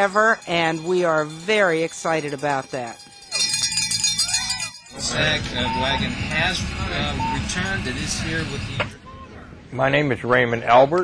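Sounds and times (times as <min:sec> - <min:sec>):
metallic ringing and jingling: 0:00.0 - 0:06.0.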